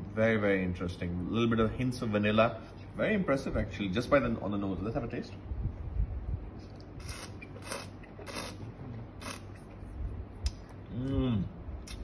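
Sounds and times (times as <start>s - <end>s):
person slurping wine: 7.0s - 9.6s.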